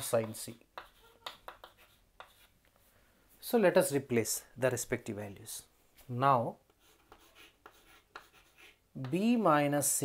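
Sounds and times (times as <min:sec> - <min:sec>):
chalk tapping on board: 0:00.0 - 0:02.5, 0:06.7 - 0:09.3
chalk scratching on chalkboard: 0:00.0 - 0:02.6, 0:06.7 - 0:09.4.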